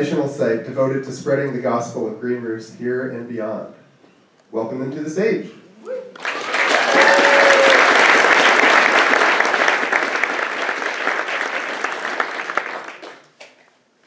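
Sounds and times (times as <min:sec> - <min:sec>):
audience applauding: 0:06.1 - 0:13.6.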